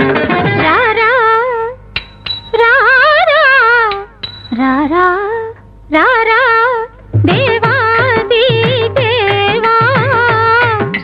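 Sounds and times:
woman singing unaccompanied: 0.4s - 1.8s, 2.5s - 11.0s.

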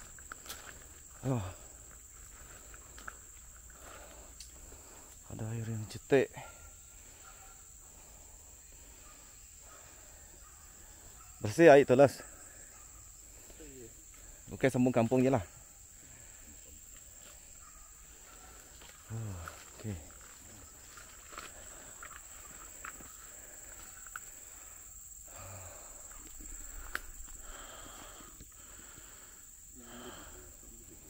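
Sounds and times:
footsteps in undergrowth: 0.0s - 4.3s, 16.9s - 24.4s
crickets droning: 0.0s - 31.0s.

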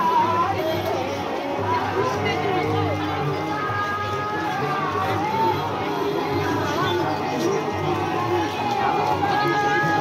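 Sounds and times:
din of crowd voices: 0.0s - 10.0s.

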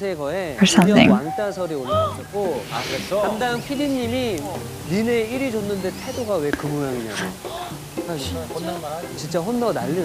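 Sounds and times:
talk show dialogue: 0.0s - 10.0s
brief hiss: 2.4s - 10.0s.

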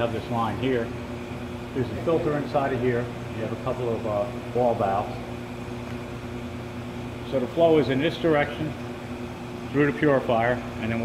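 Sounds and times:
blowers humming: 0.0s - 11.0s.

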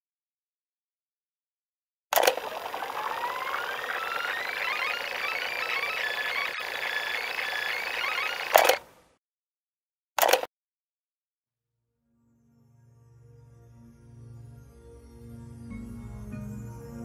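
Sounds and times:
tape rewinding whine: 2.2s - 8.9s.

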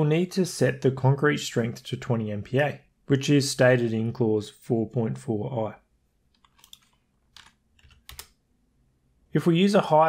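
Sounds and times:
faint keyboard keystrokes: 6.3s - 8.4s.

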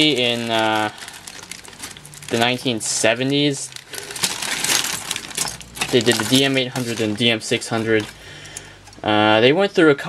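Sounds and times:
plastic bag crinkling: 0.0s - 9.0s
plastic parts clattering: 0.0s - 9.0s.

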